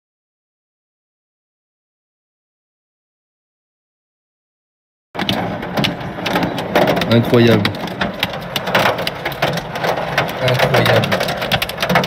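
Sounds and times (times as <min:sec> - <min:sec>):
hailstones clattering: 0:05.2 - 0:12.0.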